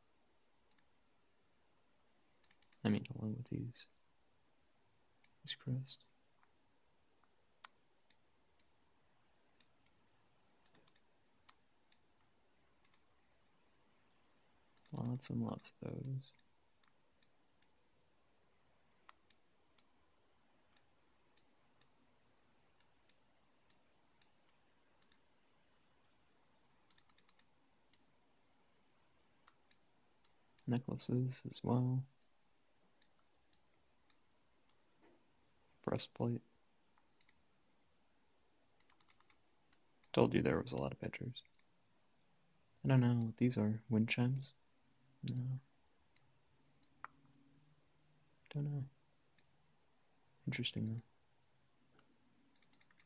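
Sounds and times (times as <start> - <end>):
computer mouse clicks: 0.7 - 1.0, 2.4 - 3.2, 5.2 - 5.6, 7.2 - 8.8, 9.5 - 10.0, 10.6 - 13.2, 14.7 - 17.8, 19.0 - 20.0, 20.7 - 22.0, 22.7 - 28.1, 29.4 - 30.8, 32.1 - 32.4, 33.0 - 35.2, 36.9 - 37.5, 38.8 - 40.2, 41.4 - 41.7, 45.2 - 45.5, 46.1 - 47.4, 49.3 - 49.6, 50.5 - 51.1, 51.9 - 53.0.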